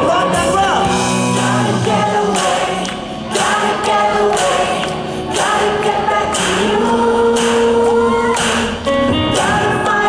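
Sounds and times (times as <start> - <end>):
audience singing along: 0.0 - 10.0
electric guitar: 0.0 - 10.0
live rock band: 0.0 - 10.0.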